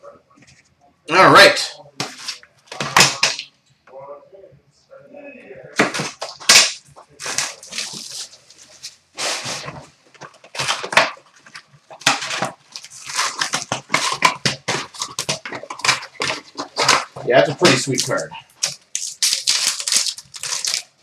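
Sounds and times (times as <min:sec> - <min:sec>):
cardboard and wrapper ripping: 0:05.8 - 0:21.0
foil packs crinkling: 0:05.8 - 0:21.0
cards laid on glass counter: 0:09.6 - 0:19.0.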